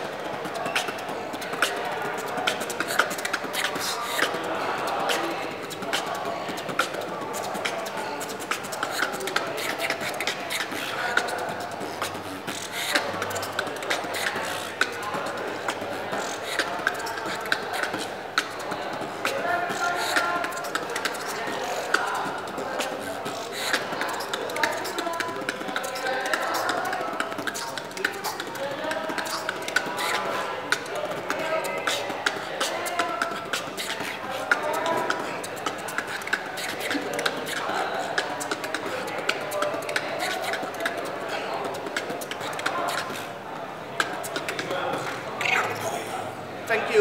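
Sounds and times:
beatboxing: 0.0 - 47.0.

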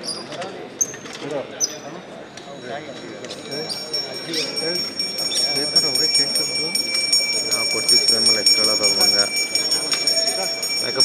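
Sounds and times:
people talking: 0.0 - 11.0
short high-pitched rings: 2.5 - 11.0.

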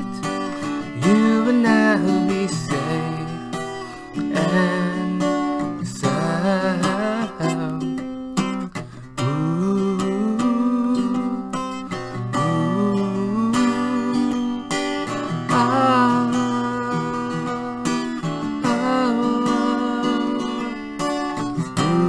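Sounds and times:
man's wordless singing: 0.0 - 8.0, 9.2 - 11.4, 12.3 - 14.6, 15.3 - 20.8, 21.6 - 22.0
acoustic guitar: 0.0 - 22.0.

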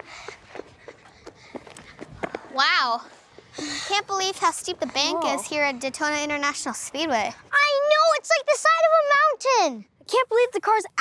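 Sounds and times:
children running on asphalt: 0.0 - 3.6.

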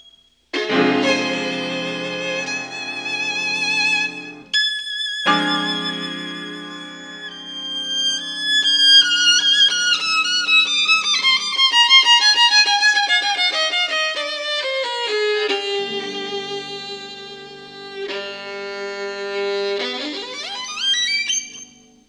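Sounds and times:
piano: 0.0 - 22.0
solo violin: 0.5 - 22.0.

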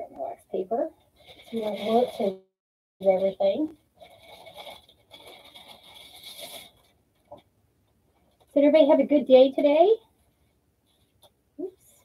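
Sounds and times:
wax paper rustling and scraping: 1.1 - 2.4, 3.0 - 7.5.

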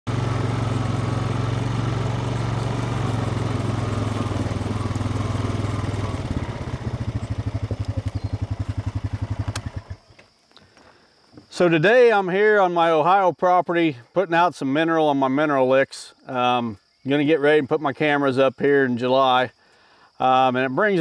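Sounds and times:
atv engine running: 0.1 - 10.3.

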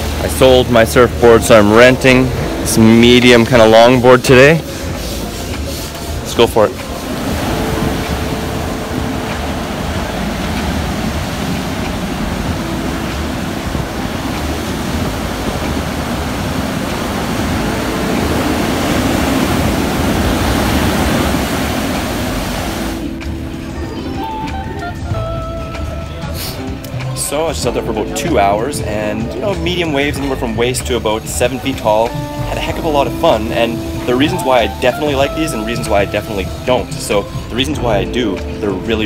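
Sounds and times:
ocean surf breaking: 0.0 - 25.2, 25.8 - 39.0
background music: 0.0 - 39.0.

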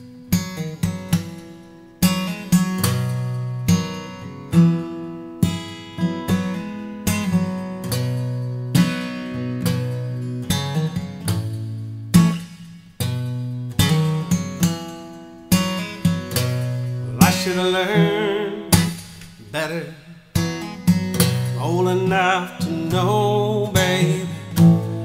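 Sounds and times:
acoustic guitar picking: 0.0 - 25.0.

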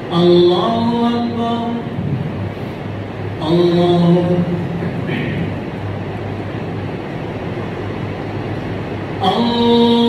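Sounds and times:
ceiling fans whirring: 0.0 - 10.0
low constant hum: 0.0 - 10.0.

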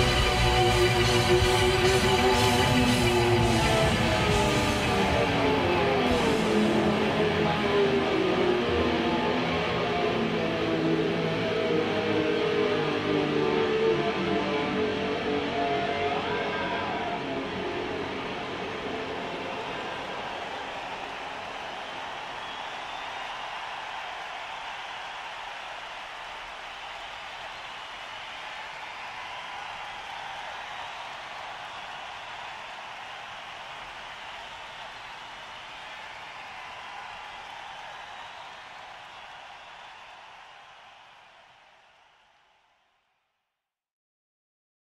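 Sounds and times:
crowd cheering and applauding: 0.0 - 43.0.

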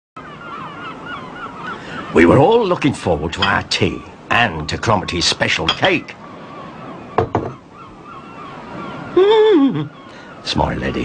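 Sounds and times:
gulls calling: 0.2 - 11.0.

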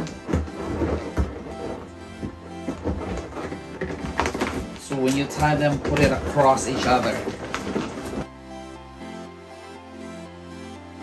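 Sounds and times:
background music with low held notes: 0.0 - 11.0.

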